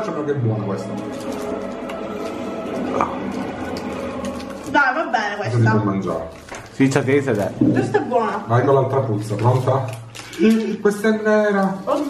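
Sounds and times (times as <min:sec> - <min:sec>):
steady background music: 0:00.0 - 0:07.9.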